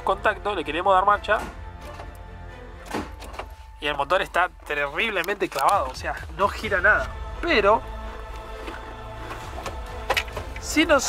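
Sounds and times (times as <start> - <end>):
background music: 0.0 - 11.0
starter motor thunk: 2.8 - 3.6, 8.7 - 10.8.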